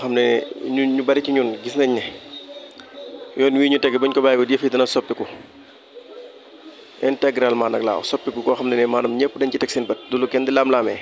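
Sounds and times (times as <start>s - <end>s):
man speaking: 3.4s - 5.5s.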